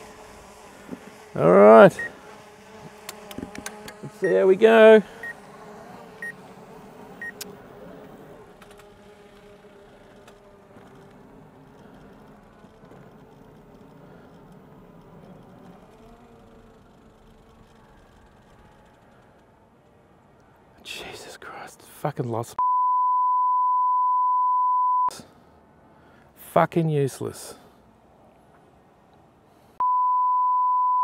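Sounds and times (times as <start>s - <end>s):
drone propellers humming: 0.0s - 20.7s
short high beeps: 22.6s - 25.1s, 29.8s - 31.0s.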